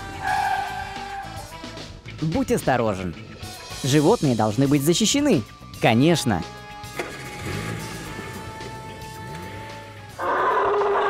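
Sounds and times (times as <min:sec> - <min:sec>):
background music: 0:00.0 - 0:11.0
elephant trumpeting: 0:00.2 - 0:01.4, 0:10.1 - 0:11.0.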